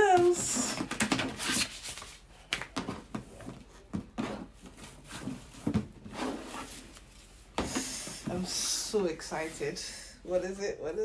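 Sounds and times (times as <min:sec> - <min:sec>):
rustling and scraping of box: 0:02.8 - 0:08.7.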